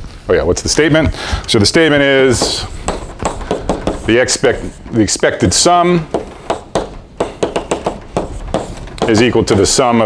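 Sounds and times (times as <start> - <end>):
chalk tapping and scraping on blackboard: 2.0 - 10.0.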